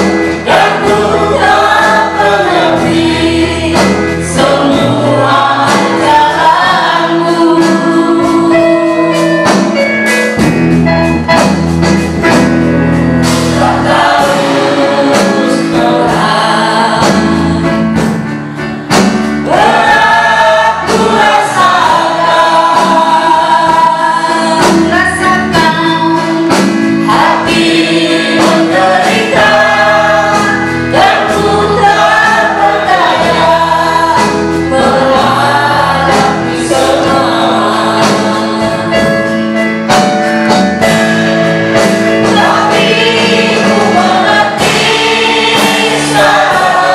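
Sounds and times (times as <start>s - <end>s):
group singing worship song: 0.0s - 9.8s, 12.2s - 46.9s
drums: 0.0s - 46.9s
keyboard: 0.0s - 46.9s.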